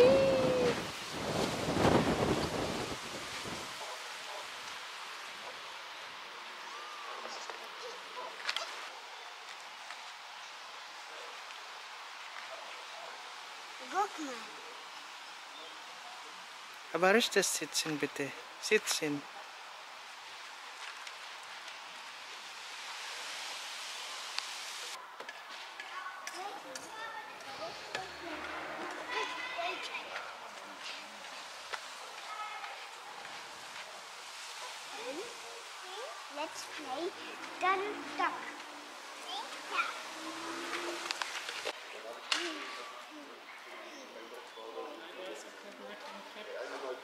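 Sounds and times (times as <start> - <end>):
steady hiss: 0.0 - 43.5
faint distant voices: 24.7 - 47.0
children's voices at play: 25.8 - 30.6, 34.9 - 40.1.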